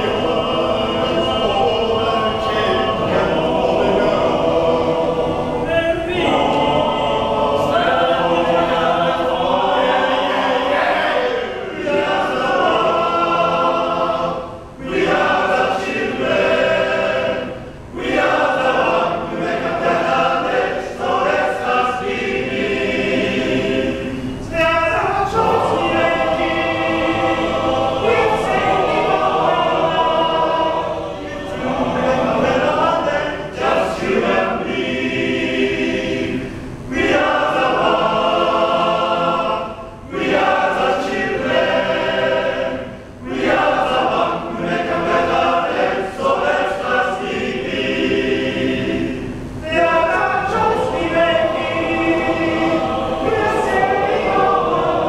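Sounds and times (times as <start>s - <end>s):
men's choir singing in harmony: 0.0s - 55.0s.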